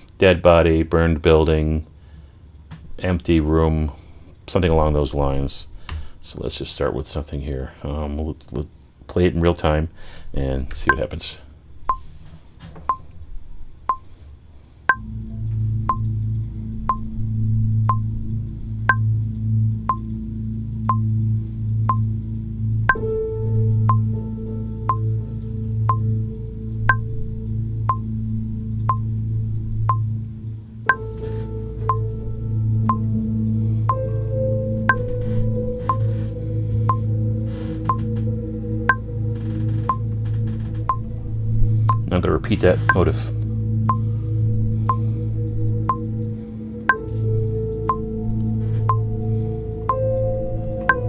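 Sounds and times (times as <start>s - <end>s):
low synth drone and pad: 10.0s - 51.0s
metronome clicks: 10.7s - 11.1s, 14.9s - 15.1s, 15.9s - 16.2s, 17.9s - 18.1s, 18.9s - 19.1s, 19.9s - 20.2s, 20.8s - 21.1s, 21.9s - 22.1s, 22.8s - 23.1s, 23.9s - 24.1s, 24.9s - 25.1s, 25.9s - 26.1s, 26.9s - 27.1s, 27.9s - 28.1s, 28.8s - 29.1s, 29.9s - 30.1s, 30.9s - 32.1s, 32.8s - 33.1s, 34.9s - 36.3s, 36.9s - 38.3s, 38.9s - 41.1s, 42.8s - 43.1s, 45.9s - 46.1s, 46.9s - 47.1s, 47.9s - 49.1s, 50.8s - 51.0s.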